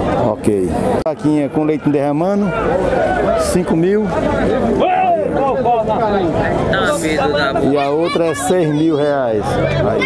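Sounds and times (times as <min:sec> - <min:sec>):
crowd chatter: 0:00.0 - 0:10.0
men talking: 0:00.1 - 0:10.0.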